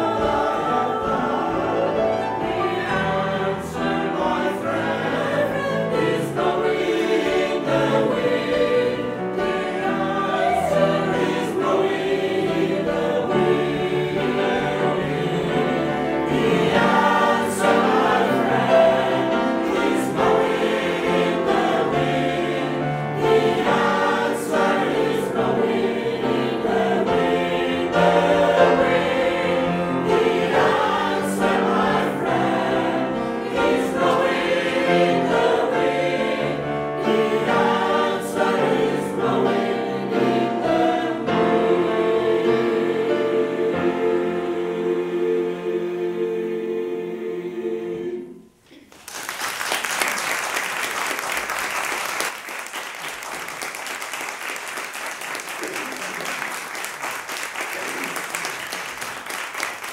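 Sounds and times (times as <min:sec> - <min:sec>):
choir singing: 0:00.0 - 0:48.8.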